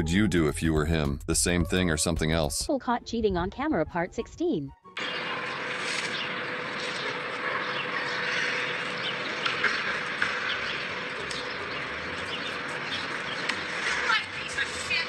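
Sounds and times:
distant traffic hum: 5.0s - 15.0s
small birds chirping: 5.0s - 15.0s.

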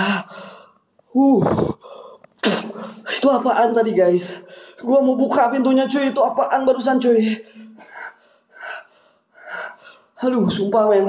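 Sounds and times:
man breathing: 0.0s - 0.8s, 1.4s - 2.3s, 7.4s - 10.2s.

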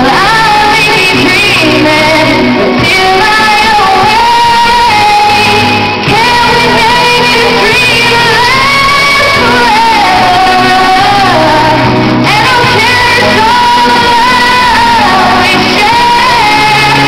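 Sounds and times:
karaoke backing track: 0.0s - 17.0s
woman singing pop ballad: 0.0s - 17.0s.

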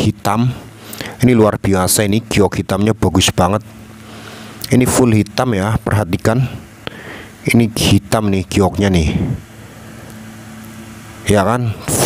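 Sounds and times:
person speaking: 0.0s - 3.7s, 4.6s - 6.7s, 7.4s - 9.5s, 11.2s - 12.0s
low mechanical hum: 0.0s - 12.0s.

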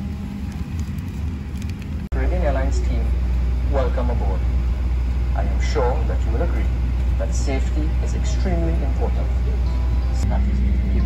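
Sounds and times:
airliner cabin hum: 0.0s - 11.0s.

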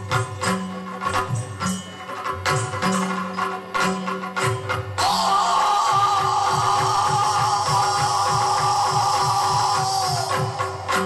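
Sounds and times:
drum strokes: 0.0s - 11.0s.

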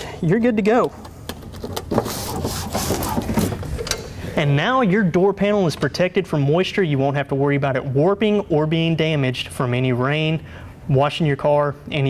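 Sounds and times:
plastic sheet rubbing on metal: 1.5s - 3.8s.

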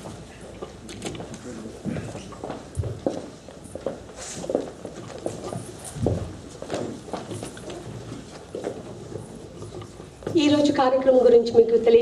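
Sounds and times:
chairs moving: 4.1s - 10.8s.

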